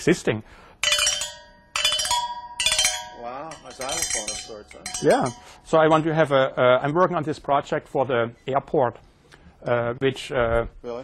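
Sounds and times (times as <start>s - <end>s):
bell-like percussion notes: 0.8s - 6.0s.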